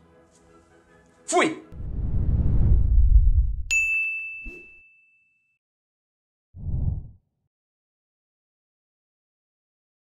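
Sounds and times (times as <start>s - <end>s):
low rumbling swell: 1.8s - 3.7s
bright ding ringing: 3.7s - 5.6s.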